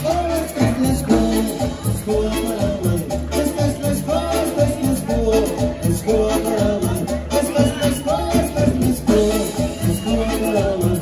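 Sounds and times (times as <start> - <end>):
band playing latin dance music: 0.0 - 11.0
repeating bass line: 0.0 - 11.0.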